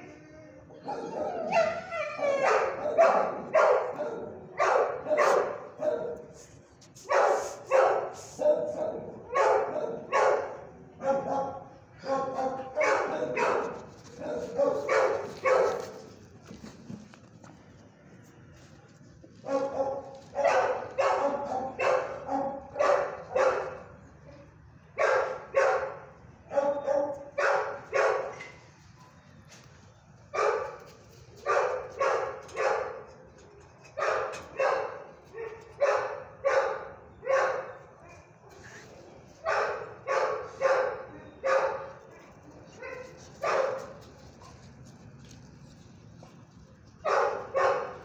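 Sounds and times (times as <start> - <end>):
dog barking: 0.9 - 6.4, 7.1 - 16.0, 19.4 - 23.9, 25.0 - 28.6, 30.4 - 30.8, 31.4 - 33.2, 34.0 - 38.3, 39.4 - 44.7, 47.0 - 48.0.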